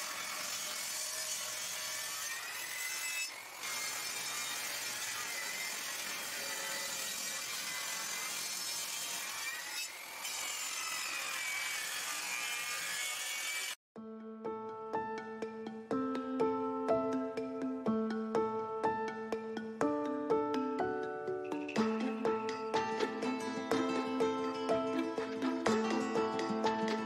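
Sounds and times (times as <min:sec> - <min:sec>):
table saw cutting wood: 0:00.0 - 0:13.8, 0:21.6 - 0:27.0.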